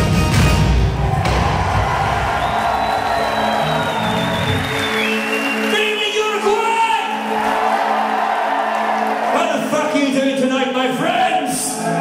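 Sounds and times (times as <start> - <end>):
crowd cheering: 0.7 - 12.0
high whistle-like tone: 2.2 - 5.8.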